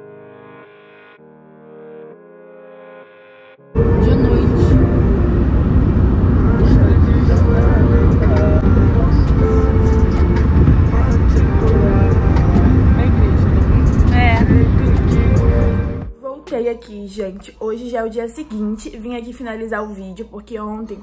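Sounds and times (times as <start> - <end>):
car driving rumble: 3.8 - 16.1.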